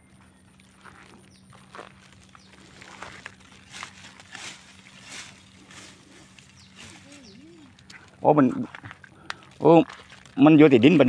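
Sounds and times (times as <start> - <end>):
pine needles crackling underfoot: 0.0 - 11.0.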